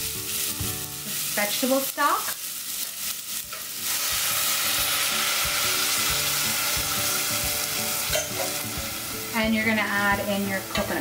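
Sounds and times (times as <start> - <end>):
sizzling hiss with pops: 0.0 - 11.0.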